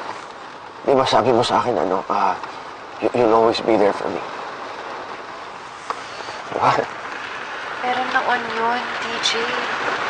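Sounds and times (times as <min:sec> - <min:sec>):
rain falling on a car: 0:00.0 - 0:10.0.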